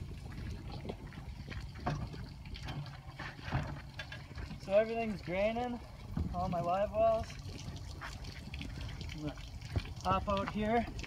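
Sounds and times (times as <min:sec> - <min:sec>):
water trickling: 0:00.0 - 0:11.0.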